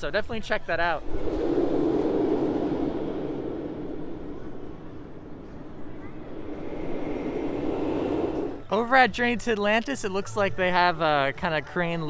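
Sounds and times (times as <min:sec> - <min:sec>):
faint rising whine: 0:00.0 - 0:09.2
roller coaster wheels roaring: 0:00.7 - 0:09.0.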